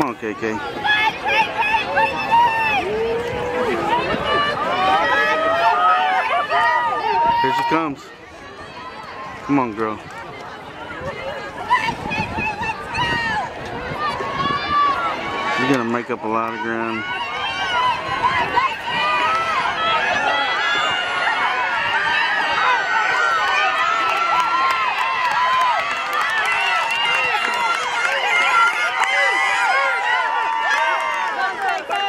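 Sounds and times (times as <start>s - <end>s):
spectators shouting: 0.0s - 32.0s.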